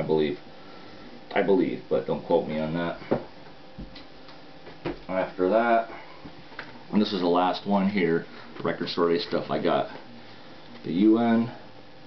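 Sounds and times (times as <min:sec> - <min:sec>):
faint room hum: 0:00.0 - 0:12.0.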